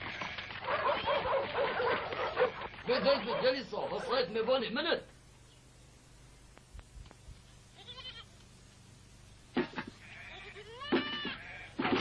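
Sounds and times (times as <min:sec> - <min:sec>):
farm animals bleating: 0:00.0 - 0:00.6, 0:02.3 - 0:03.2, 0:07.8 - 0:08.3, 0:09.7 - 0:12.0.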